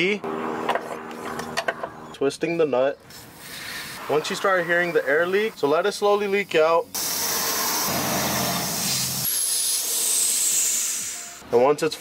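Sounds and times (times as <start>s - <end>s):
compressed air hissing: 3.1s - 11.4s.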